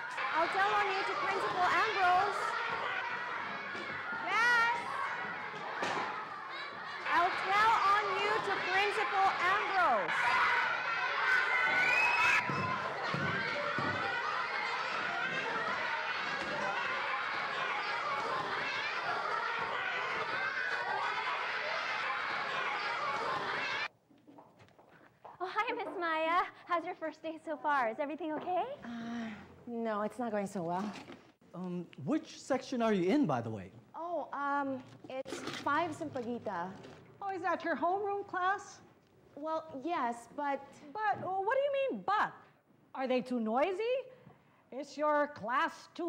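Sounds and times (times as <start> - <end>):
children chattering and shouting: 0.0 - 23.9.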